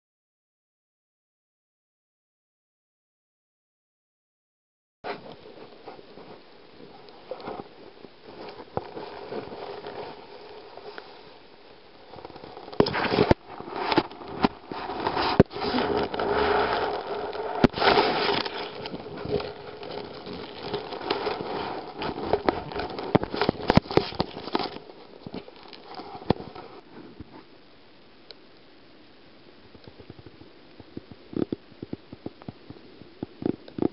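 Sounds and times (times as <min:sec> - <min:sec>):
sharp crackles and knocks: 0:05.0 - 0:28.4, 0:29.6 - 0:33.9.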